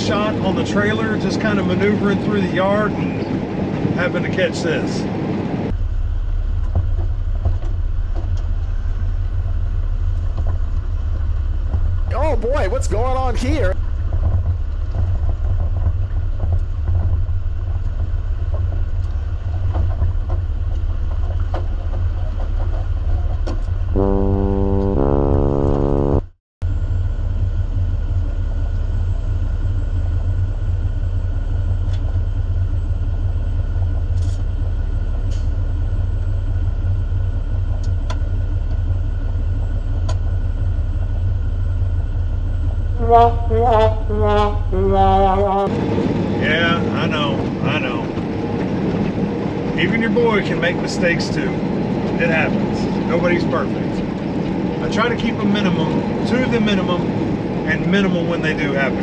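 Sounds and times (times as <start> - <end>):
diesel truck engine rumbling: 7.2 - 14.2, 43.0 - 48.9
falling two-note tone: 24.0 - 26.3, 43.0 - 45.8.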